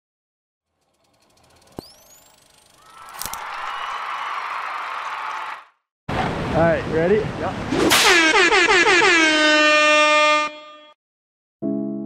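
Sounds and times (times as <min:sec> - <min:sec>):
sharp click with rising whistle: 0:01.4 - 0:03.9.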